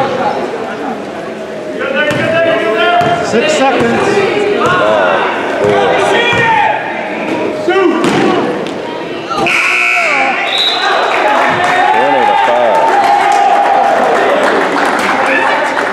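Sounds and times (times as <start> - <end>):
voices and cheering: 0.0 - 15.9
scoreboard horn: 9.4 - 10.4.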